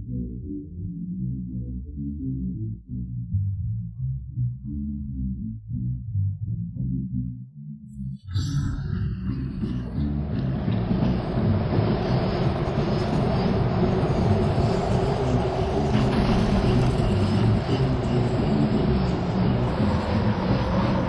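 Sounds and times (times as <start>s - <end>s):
loud low rumble: 8.1s - 21.0s.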